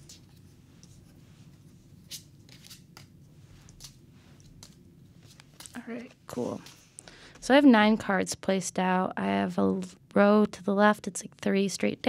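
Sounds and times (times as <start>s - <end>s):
low room hum: 0.0s - 12.0s
cards slapping on table: 2.1s - 3.2s.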